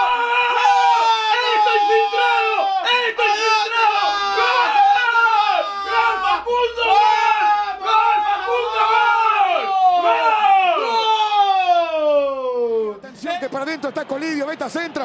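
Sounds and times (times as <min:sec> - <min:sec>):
men yelling in celebration: 0:00.0 - 0:13.0.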